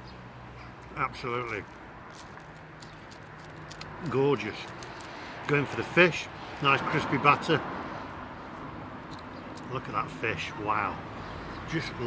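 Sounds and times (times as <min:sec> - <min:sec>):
person chewing chips: 0:01.7 - 0:05.3.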